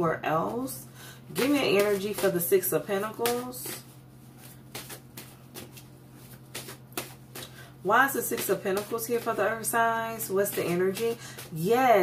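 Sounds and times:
cards being shuffled: 3.2 - 7.6.

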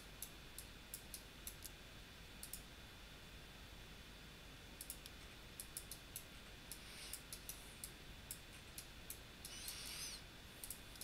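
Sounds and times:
computer mouse clicks: 0.2 - 1.8, 2.4 - 2.6, 4.8 - 11.0.

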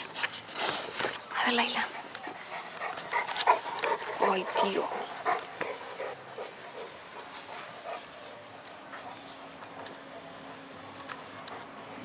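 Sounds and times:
dogs panting: 0.0 - 10.6, 11.4 - 12.0.

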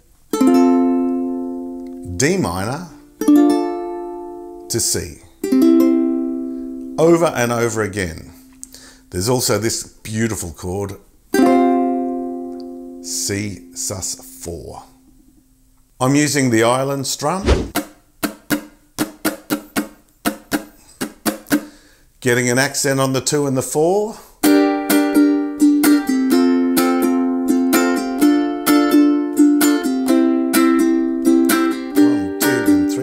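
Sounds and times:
ukulele chord strummed: 0.3 - 4.8, 5.4 - 7.3, 11.3 - 13.8, 17.8 - 21.7, 24.4 - 33.0.

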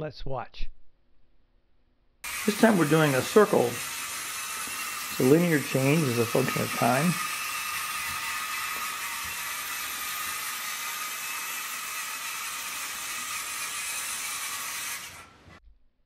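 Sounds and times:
electric motors whirring: 2.2 - 15.6.

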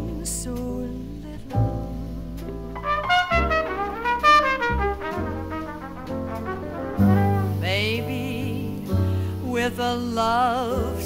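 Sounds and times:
person singing: 0.0 - 1.6, 7.6 - 11.0
piano: 0.0 - 11.0
upright bass: 0.0 - 11.0
jazz trumpet: 2.7 - 8.5.

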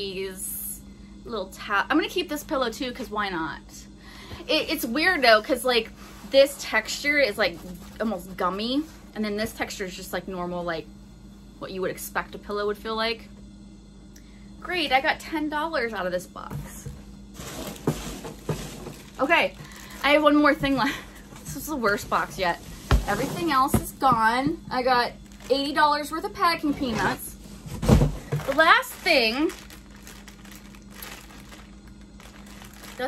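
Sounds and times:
faint steady hum: 0.0 - 33.0
packing peanuts and cardboard rustling: 17.4 - 33.0.

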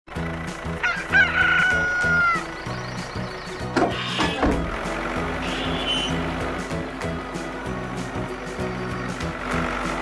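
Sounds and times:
light background music: 0.1 - 10.0
rooster crowing: 0.8 - 2.5.

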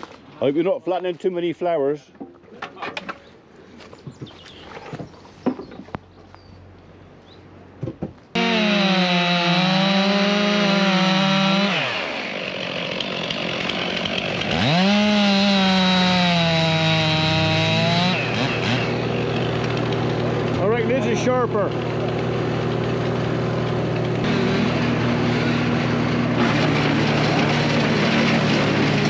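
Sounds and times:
chainsaw cutting logs: 8.4 - 29.0.

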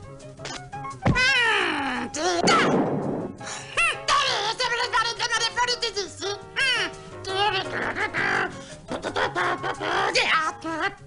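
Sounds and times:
cartoon voice wailing: 1.1 - 2.8, 6.6 - 11.0
thump: 2.4 - 3.5.

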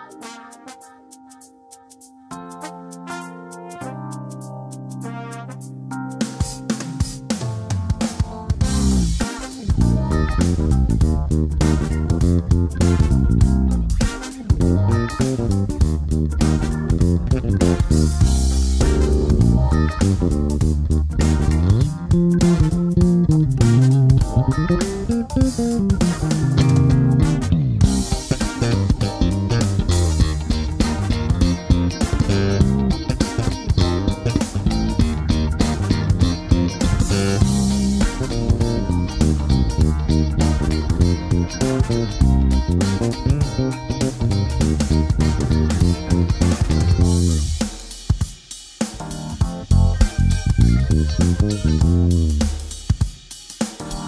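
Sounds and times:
electric bass plucked notes: 8.6 - 47.6, 49.6 - 52.6.

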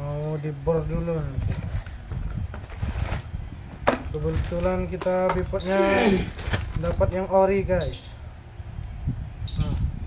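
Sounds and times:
packaging rustling: 4.1 - 5.6, 6.2 - 7.0.

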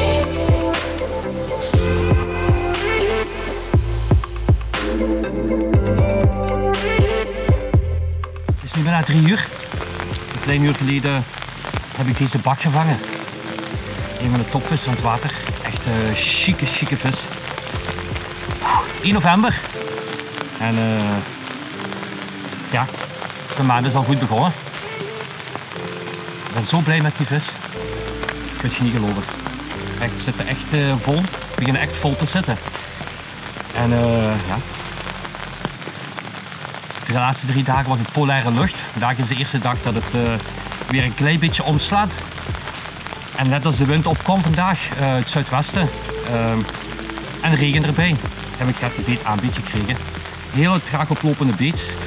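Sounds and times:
steady rain falling: 0.0 - 52.0
man talking: 8.6 - 9.6, 10.2 - 13.2, 14.0 - 17.4, 18.5 - 19.8, 20.6 - 21.4, 22.7 - 23.0, 23.6 - 24.6, 26.5 - 27.6, 28.6 - 32.7, 33.7 - 34.8, 37.0 - 42.3, 43.3 - 46.8, 47.4 - 52.0.

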